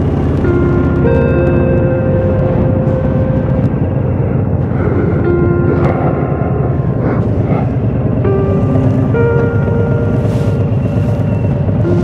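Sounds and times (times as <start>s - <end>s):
motorcycle engine rumble: 0.0s - 12.0s
wind rush on microphone: 0.0s - 12.0s.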